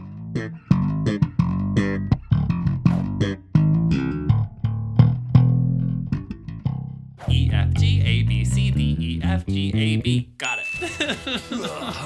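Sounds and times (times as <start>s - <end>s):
slap bass funk line: 0.0s - 10.0s.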